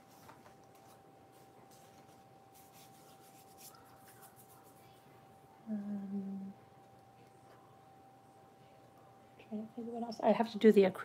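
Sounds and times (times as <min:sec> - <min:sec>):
faint steady high whine: 0:00.0 - 0:11.0
woman humming: 0:05.6 - 0:06.6.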